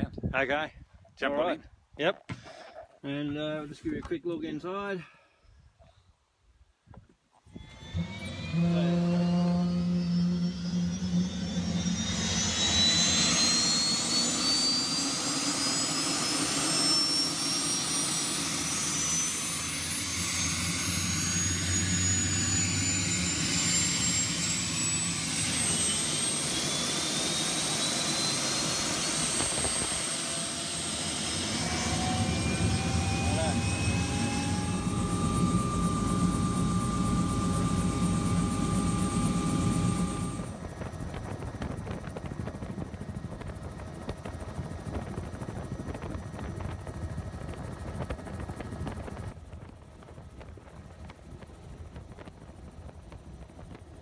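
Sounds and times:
helicopter turbine whine: 7.5 - 54.0
low rising engine tone: 7.6 - 49.3.

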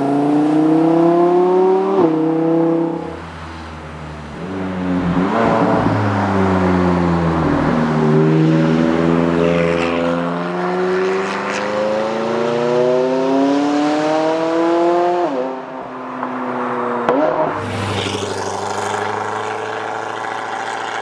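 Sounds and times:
car passing by: 4.8 - 21.0
sports car engine revving: 17.0 - 21.0
exhaust crackles: 17.4 - 21.0.

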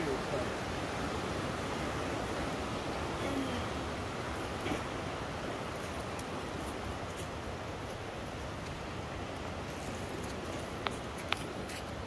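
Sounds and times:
water rushing from cascades: 0.0 - 12.0.

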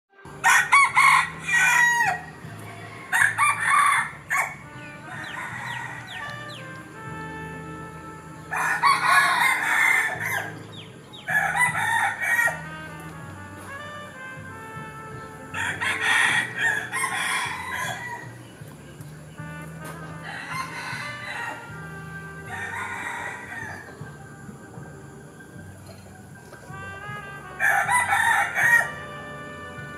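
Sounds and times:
quiet background music: 0.1 - 29.9
rooster crowing: 0.4 - 2.4, 3.1 - 6.7, 8.3 - 10.6, 11.2 - 13.0, 15.6 - 18.4, 20.2 - 24.2, 27.4 - 29.2.

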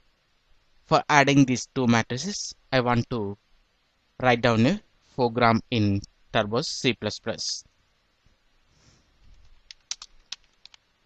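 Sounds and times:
computer keyboard typing: 9.4 - 10.8.

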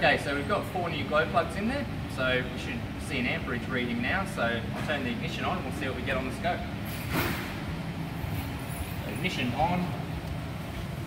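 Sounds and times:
low workshop rumble: 0.0 - 11.0.

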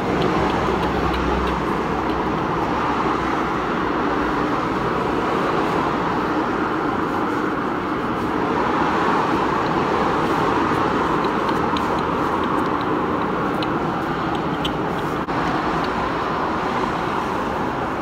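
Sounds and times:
rushing background noise: 0.0 - 18.0.

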